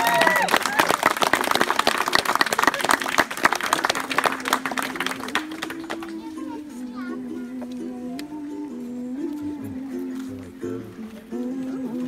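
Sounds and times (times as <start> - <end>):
crowd clapping: 0.0 - 6.4.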